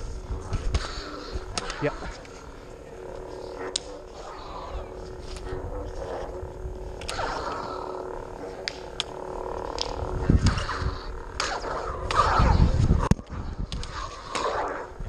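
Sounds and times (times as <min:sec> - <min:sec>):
low rumble: 0:00.0 - 0:15.0
steady low hum: 0:00.0 - 0:15.0
lightsaber blades clacking: 0:00.4 - 0:02.5, 0:03.1 - 0:15.0.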